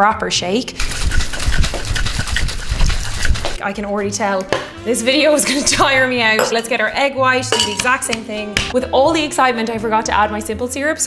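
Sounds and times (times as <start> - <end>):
liquid sloshing in cocktail shaker: 0.8 - 3.6.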